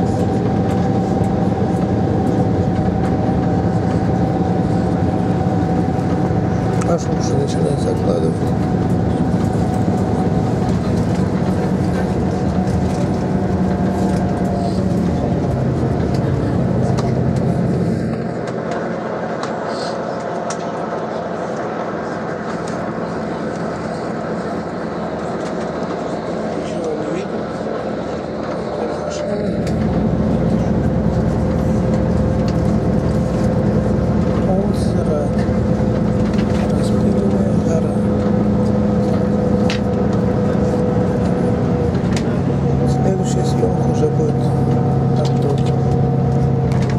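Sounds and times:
bus engine and road noise: 0.0s - 46.9s.

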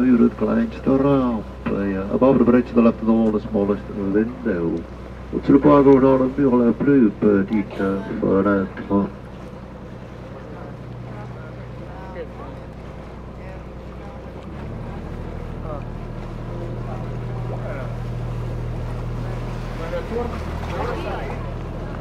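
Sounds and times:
boat motor running: 0.0s - 22.0s
faint voices: 0.0s - 22.0s.

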